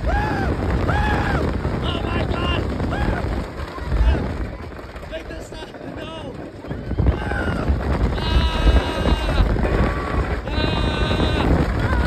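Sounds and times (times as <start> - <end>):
riders screaming: 0.0 - 1.6, 6.7 - 12.0
roller coaster rumbling on track: 0.0 - 12.0
wind buffeting microphone: 0.0 - 12.0.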